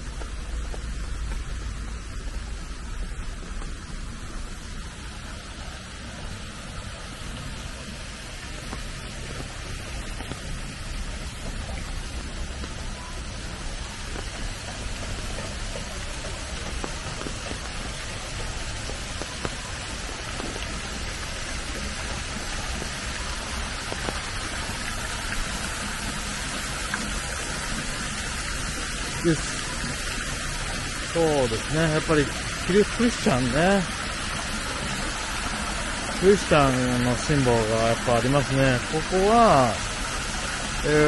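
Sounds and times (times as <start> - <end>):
fountain water splashing: 0.0 - 41.0
rain on stone paving: 0.0 - 41.0.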